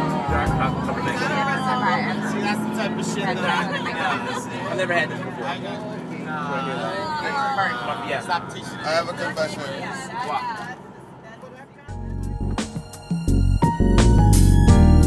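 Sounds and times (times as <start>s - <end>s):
people chatting: 0.0s - 12.0s
low hum of bus: 0.0s - 15.0s.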